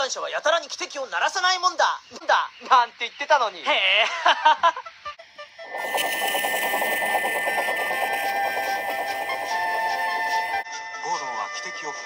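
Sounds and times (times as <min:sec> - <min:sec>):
steam locomotive whistle: 0:05.6 - 0:10.6
toy train whirring rattle: 0:05.7 - 0:10.6.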